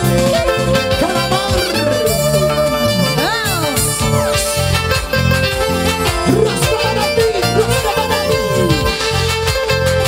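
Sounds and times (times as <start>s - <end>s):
electric bass: 0.0s - 10.0s
keyboard: 0.0s - 10.0s
violins playing melody: 0.0s - 10.0s.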